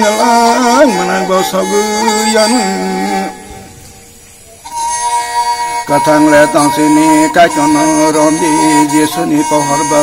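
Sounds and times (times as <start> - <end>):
man singing: 0.0 - 3.9, 5.5 - 10.0
fiddle holding high note: 0.0 - 10.0.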